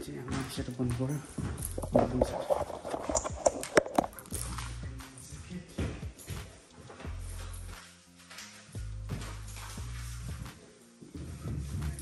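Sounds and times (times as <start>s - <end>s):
hard objects knocking and clicking: 1.4s - 4.6s.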